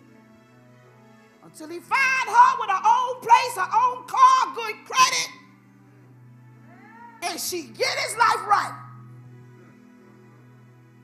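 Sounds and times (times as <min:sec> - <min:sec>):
woman preaching through amplifier: 0:01.6 - 0:05.4, 0:06.7 - 0:09.0.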